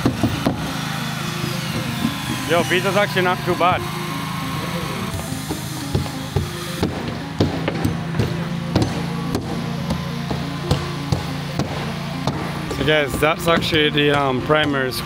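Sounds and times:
hammers driving nails into wood: 0.0s - 1.0s, 1.7s - 2.5s, 5.1s - 15.0s
background music: 0.0s - 15.0s.

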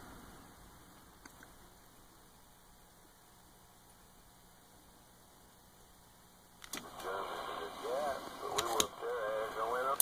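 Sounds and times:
radio click: 6.6s - 10.0s
garbled voice over radio: 6.9s - 10.0s
sharp radio clicks: 8.2s - 10.0s.

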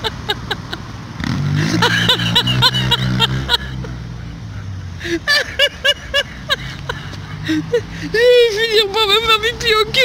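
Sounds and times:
woman laughing: 0.0s - 0.9s, 1.6s - 4.0s, 5.0s - 8.7s
car engine passing: 0.0s - 8.5s.

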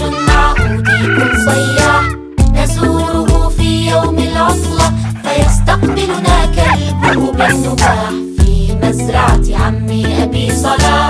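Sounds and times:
upbeat children's song: 0.0s - 11.0s
rooster crowing: 0.6s - 2.1s.

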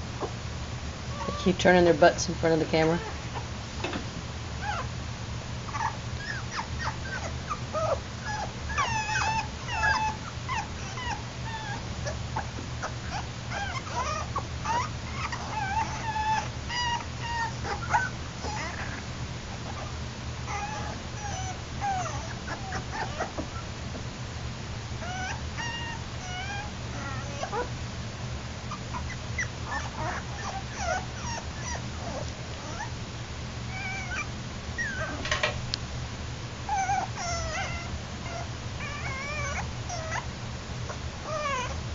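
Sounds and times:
steady low hum: 0.0s - 41.9s
puppies whimpering: 1.1s - 1.7s, 4.6s - 4.9s, 5.7s - 23.8s, 25.0s - 27.8s, 28.7s - 33.0s, 33.7s - 35.4s, 36.7s - 40.3s, 40.9s - 41.8s.

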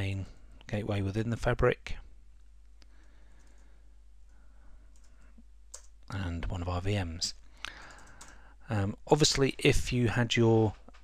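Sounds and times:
computer mouse click: 4.9s - 5.9s, 7.8s - 8.4s.

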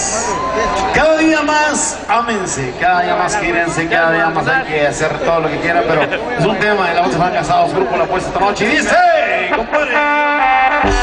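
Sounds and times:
drums and bass: 9.5s - 11.0s.

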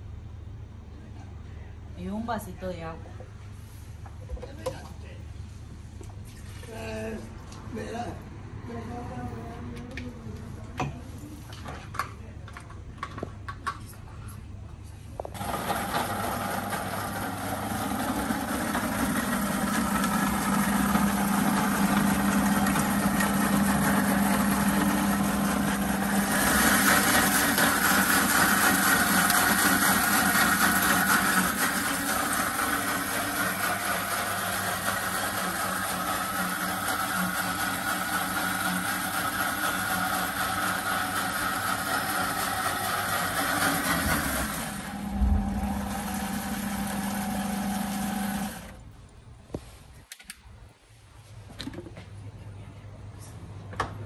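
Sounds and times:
blender motor running: 15.4s - 48.8s.

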